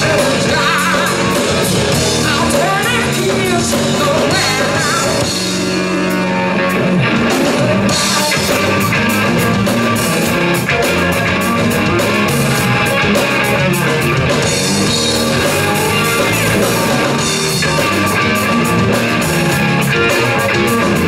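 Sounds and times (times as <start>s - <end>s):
drum kit: 0.0s - 21.0s
electric guitar: 0.0s - 21.0s.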